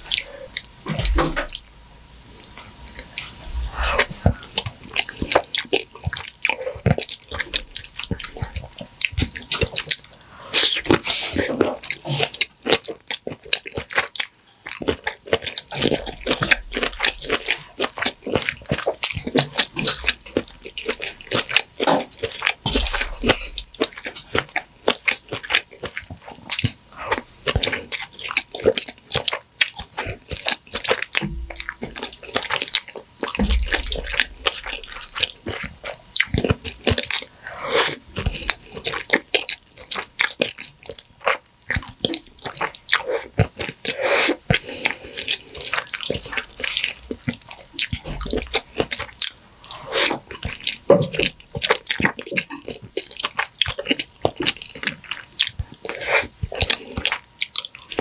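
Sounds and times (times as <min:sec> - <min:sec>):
wet chewing and mouth sounds: 0:00.0 - 0:58.0.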